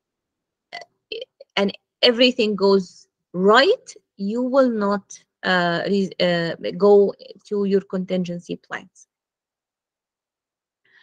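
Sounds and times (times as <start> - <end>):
woman speaking: 1.1 - 9.0.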